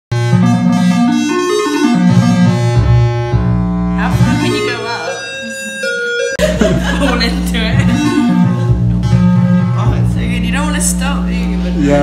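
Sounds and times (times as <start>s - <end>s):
electronic tones jumping in pitch: 0.4s - 11.4s
low bass tone: 2.0s - 12.0s.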